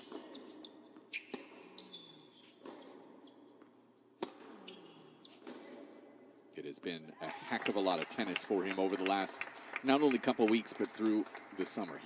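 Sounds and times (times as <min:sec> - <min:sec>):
tennis ball bouncing on hard court: 0:00.1 - 0:06.0.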